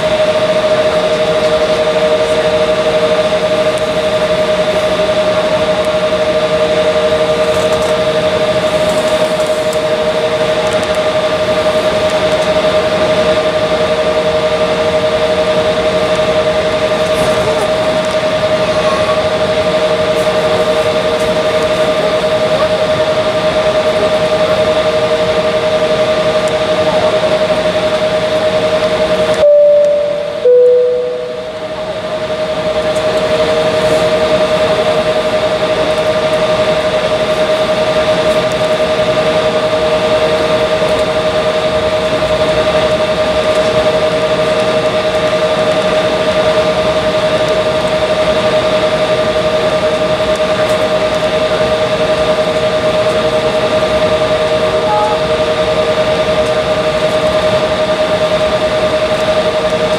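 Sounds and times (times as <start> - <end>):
two-note hum: 29.4 - 31.9, 54.8 - 55.4.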